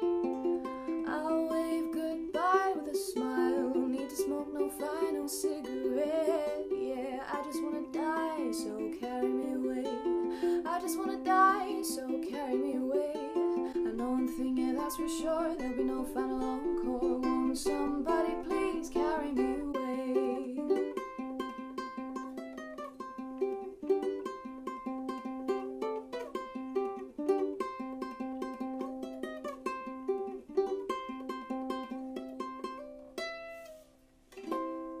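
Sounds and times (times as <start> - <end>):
ukulele plucked: 0.0 - 35.0.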